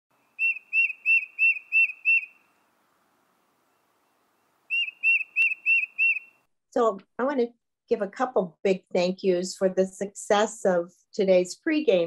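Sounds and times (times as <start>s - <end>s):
high whistled chirps: 0.3s - 2.5s, 4.7s - 6.4s.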